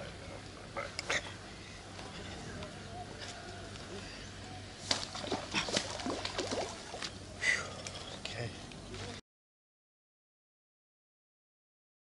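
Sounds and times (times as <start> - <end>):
fish splashing in water: 4.8 - 7.2.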